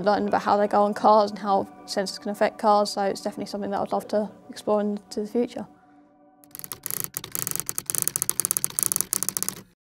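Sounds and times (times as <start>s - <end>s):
fast mechanical clicking: 6.5s - 9.8s.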